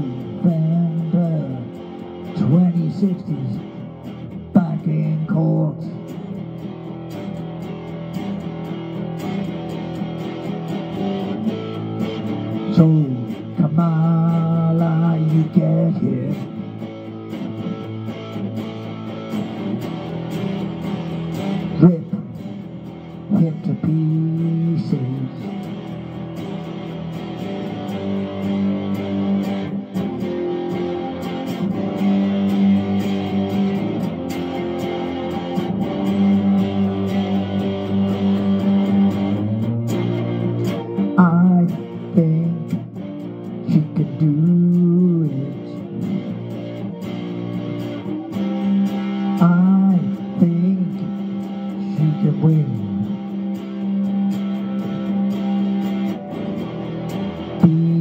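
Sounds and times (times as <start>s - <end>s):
electric guitar chords: 0.0s - 58.0s.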